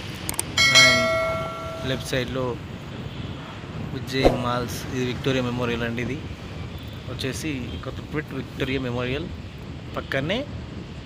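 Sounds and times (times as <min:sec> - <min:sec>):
bell chime: 0:00.6 - 0:02.3.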